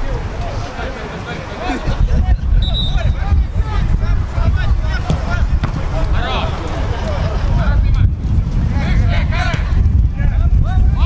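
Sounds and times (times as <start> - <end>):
players calling out: 0.0 - 8.0
wind rumble on microphone: 0.0 - 11.0.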